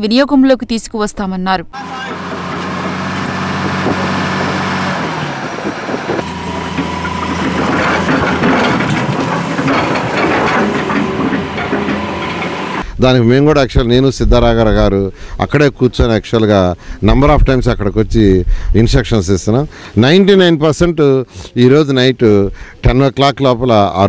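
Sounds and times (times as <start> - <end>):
excavator diesel engine running: 1.8 - 12.8
bucket scraping rocks and rubble: 6.2 - 12.8.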